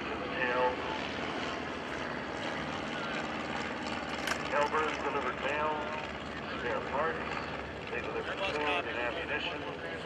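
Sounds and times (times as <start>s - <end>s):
propeller plane engine droning: 0.0s - 10.0s.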